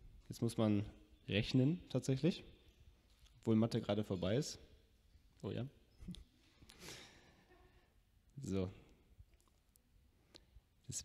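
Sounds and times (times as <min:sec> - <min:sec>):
short exhale near microphone: 0:06.7 - 0:07.4.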